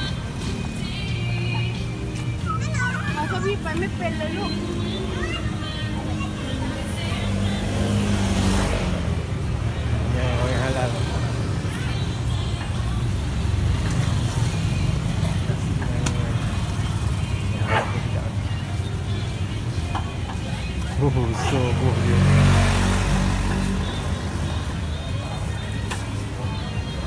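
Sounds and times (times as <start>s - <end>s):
faint background chatter: 0.0s - 27.0s.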